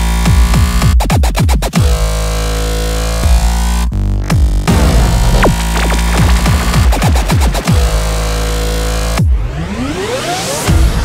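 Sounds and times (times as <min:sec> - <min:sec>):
electronic dance music: 0:05.3 - 0:08.4.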